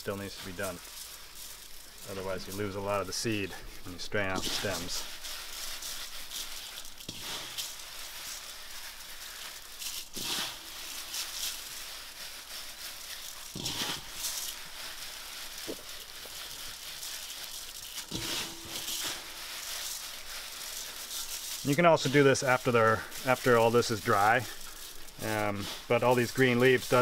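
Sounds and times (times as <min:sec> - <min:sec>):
hands rubbing dry seed heads: 0:00.0 - 0:27.0.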